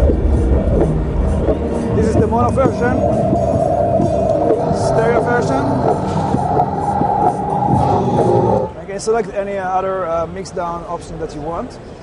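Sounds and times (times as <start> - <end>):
music with long held note: 0.0 - 8.8.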